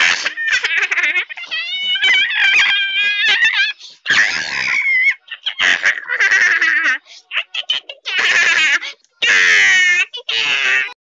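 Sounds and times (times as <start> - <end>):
child shrieking laughter: 0.0 - 11.0.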